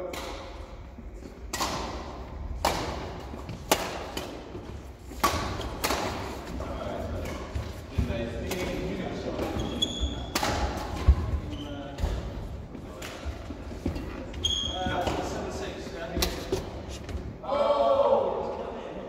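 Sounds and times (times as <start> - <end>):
racket hitting shuttlecock: 0.0 - 0.7, 1.3 - 6.6, 7.2 - 11.4.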